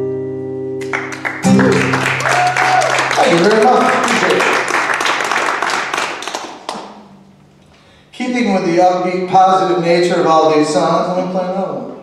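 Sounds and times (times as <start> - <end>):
audience applauding: 0.8 - 7.1.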